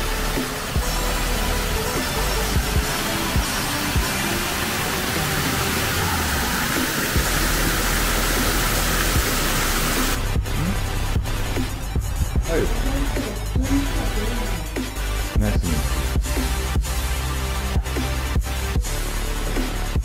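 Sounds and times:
water splashing down stone cascade: 0.0s - 10.2s
background pop music: 0.0s - 20.0s.

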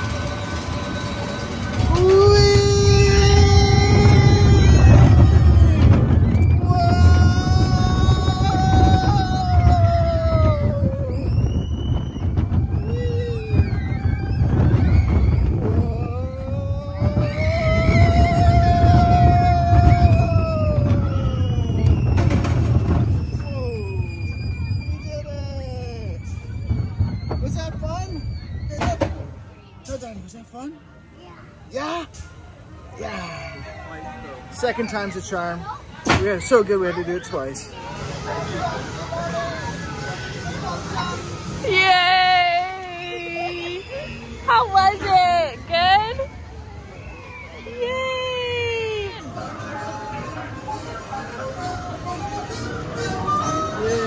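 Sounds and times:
riders screaming and whooping: 0.0s - 29.0s, 32.9s - 35.2s, 37.6s - 54.0s
high squeals: 0.0s - 30.0s, 36.4s - 54.0s
wind rumble on microphone: 1.7s - 29.5s.

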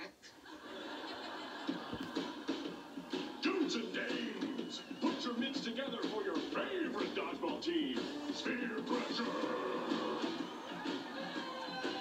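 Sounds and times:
voices from television speaker: 0.0s - 0.4s, 3.3s - 10.4s
television show music: 0.0s - 12.0s.

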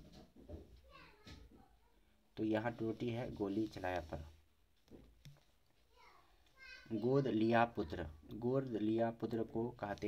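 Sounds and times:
person speaking: 2.4s - 4.5s, 6.6s - 10.0s.

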